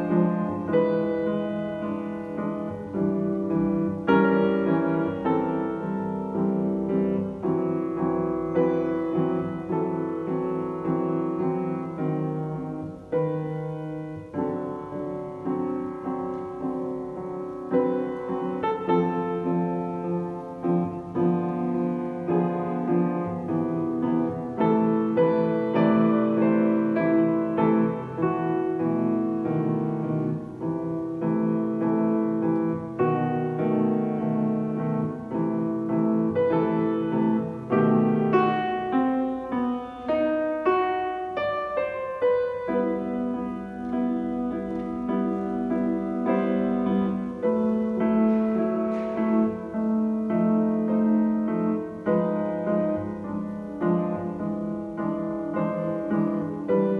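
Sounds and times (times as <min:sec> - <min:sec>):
solo grand piano: 0:00.0 - 0:56.9.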